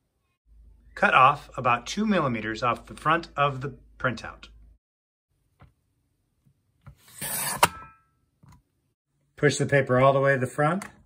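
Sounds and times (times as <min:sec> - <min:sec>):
paper trimmer blade sliding: 0:07.0 - 0:07.8.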